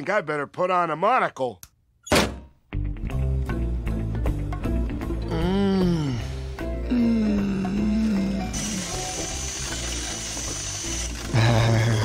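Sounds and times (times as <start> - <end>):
background music: 2.5 - 12.0
power grinder grinding metal: 8.5 - 12.0.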